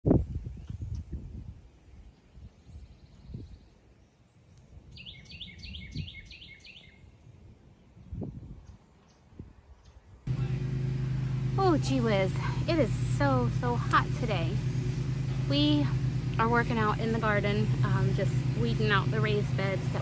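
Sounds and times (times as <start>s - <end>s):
bird trill: 4.9s - 7.0s
songbird singing high notes: 4.9s - 7.0s.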